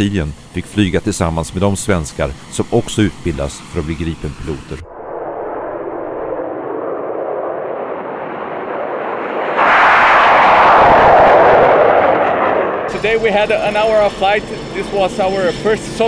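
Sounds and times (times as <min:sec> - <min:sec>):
jet engine roaring at takeoff: 0:00.0 - 0:16.0.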